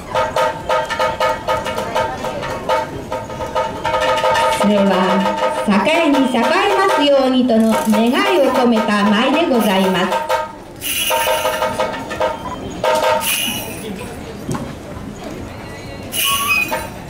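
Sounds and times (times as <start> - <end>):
sharp drum strokes: 0.0 - 13.8.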